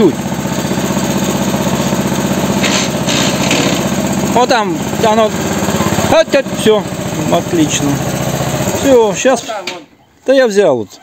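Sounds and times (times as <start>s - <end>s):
small tractor engine running: 0.0s - 9.7s.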